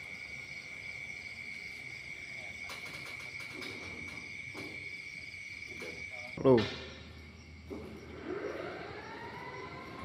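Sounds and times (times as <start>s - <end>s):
sliding door motor whining: 7.4s - 10.0s.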